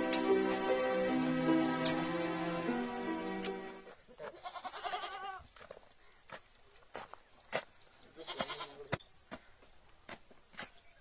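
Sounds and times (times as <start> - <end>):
goat bleating: 4.1 - 5.4, 8.2 - 9.0.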